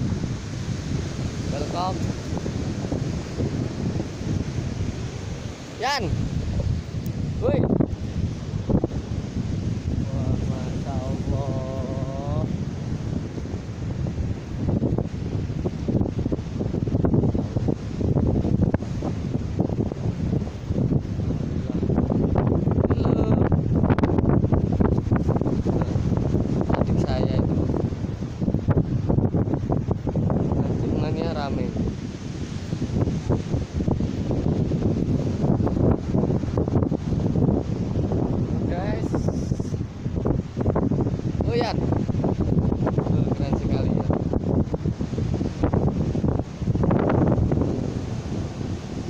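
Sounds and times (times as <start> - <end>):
ocean waves breaking: 0.0 - 49.0
wind buffeting microphone: 0.0 - 49.0.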